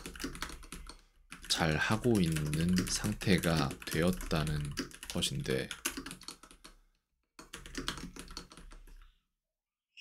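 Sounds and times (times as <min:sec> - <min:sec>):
typing on computer keyboard: 0:00.0 - 0:06.8, 0:07.4 - 0:09.0.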